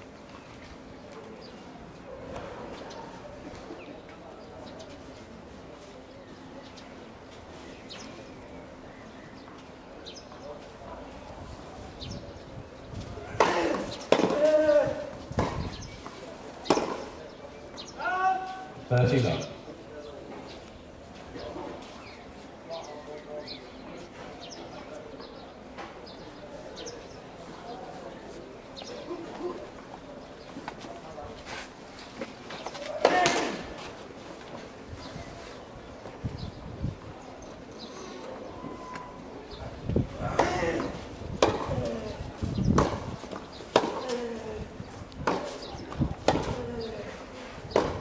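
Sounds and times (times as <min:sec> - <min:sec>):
tennis racket hitting ball: 0:40.3 - 0:41.8, 0:42.8 - 0:43.1, 0:43.7 - 0:44.2.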